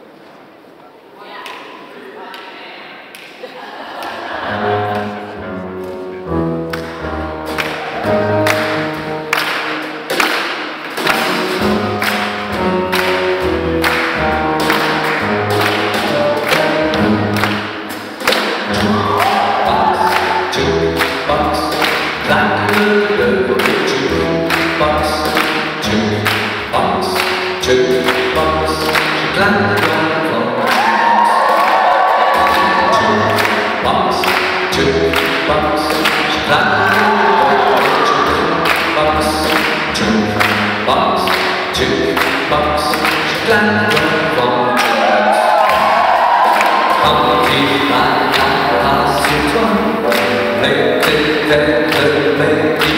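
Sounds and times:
big band playing swing: 4.4s - 52.9s.

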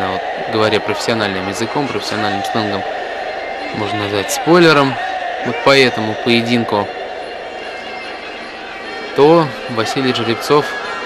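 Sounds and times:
sports hall room ambience: 0.0s - 11.0s.

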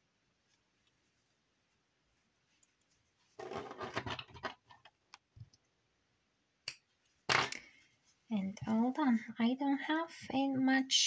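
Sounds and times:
yarn rustling and scratching: 0.4s - 5.0s.

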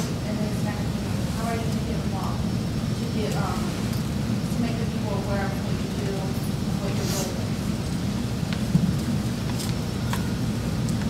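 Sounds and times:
room background rumble: 0.0s - 11.0s.

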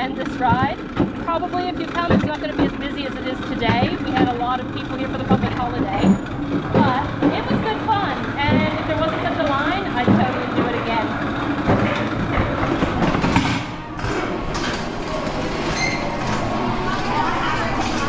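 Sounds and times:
voices: 0.0s - 13.5s, 15.0s - 18.0s
coaster sled wheels rattling on rail: 0.0s - 18.0s.

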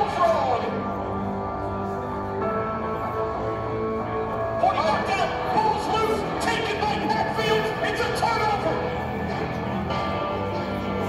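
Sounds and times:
music over speakers: 0.0s - 11.0s
announcer's excited voice: 4.6s - 8.8s.

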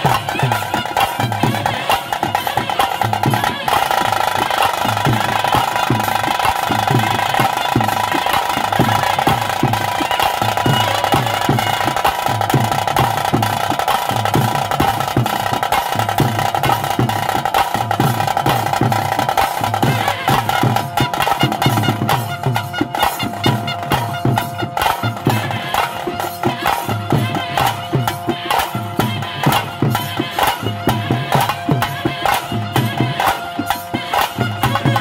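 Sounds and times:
drums beating steady rhythm: 0.0s - 35.0s.

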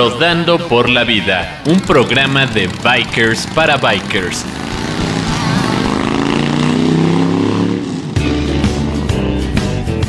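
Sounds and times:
guitar music: 0.0s - 10.0s
motorcycle engine revving: 1.1s - 9.3s.

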